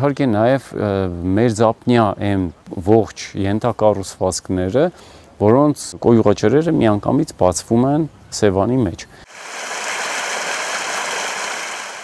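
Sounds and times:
water gushing from pipe: 9.3s - 12.0s.

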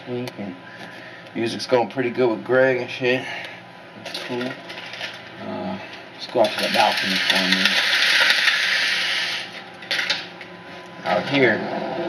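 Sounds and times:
window blind slats rattling: 6.4s - 10.2s.

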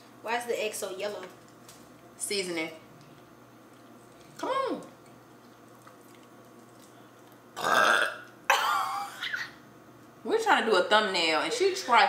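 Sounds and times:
person burping loudly: 7.6s - 9.2s.

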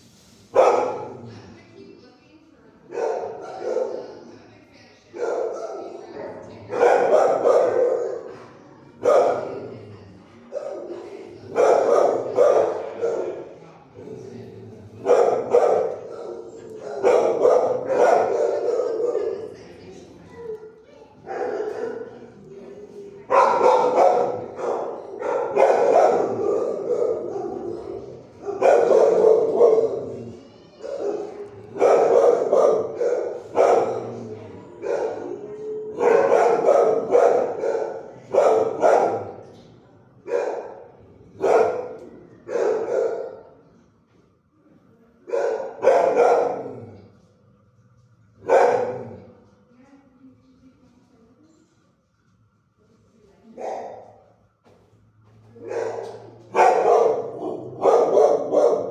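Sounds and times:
dogs barking with echo: 0.6s - 1.3s, 2.9s - 4.2s, 5.2s - 9.7s, 10.5s - 13.6s, 14.9s - 19.6s, 21.2s - 22.4s, 23.3s - 39.5s, 40.2s - 43.5s, 45.3s - 47.0s, 48.4s - 49.3s, 55.6s - 58.9s.

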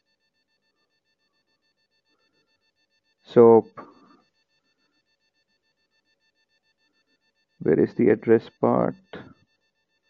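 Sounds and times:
faint electronic whine: 0.0s - 10.0s.

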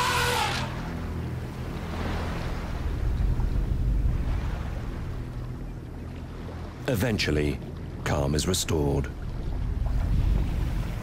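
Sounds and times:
elephant trumpeting: 0.0s - 0.9s
water churning: 0.0s - 11.0s
low rumble: 8.9s - 11.0s.

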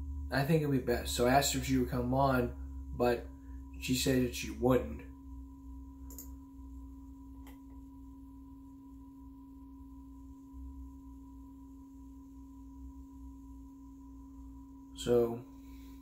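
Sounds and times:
appliance low hum: 0.0s - 16.0s.

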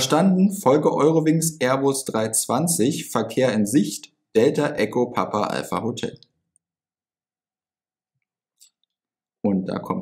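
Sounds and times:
man speaking: 0.0s - 6.4s, 9.4s - 10.0s.

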